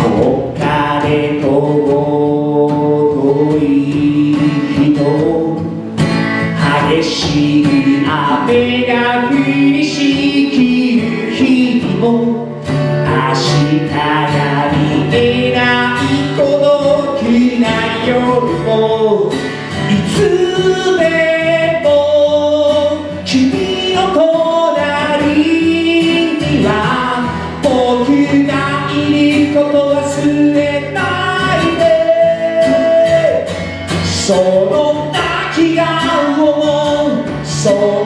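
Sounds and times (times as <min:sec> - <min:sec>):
acoustic guitar: 0:00.0 - 0:38.0
man singing: 0:00.0 - 0:38.0.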